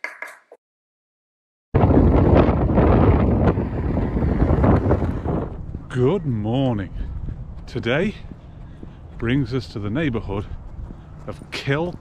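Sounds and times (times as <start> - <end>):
wind buffeting microphone: 1.8 - 12.0.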